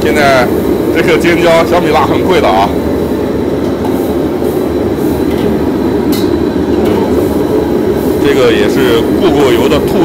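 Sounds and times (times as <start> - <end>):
gas burner rushing: 0.0 - 10.0.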